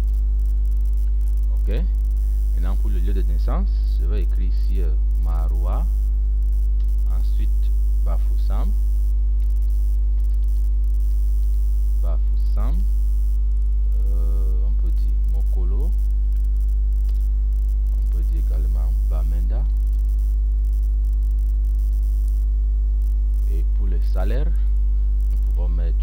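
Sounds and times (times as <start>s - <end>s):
electrical mains hum: 0.0s - 26.0s
faint hiss: 0.0s - 26.0s.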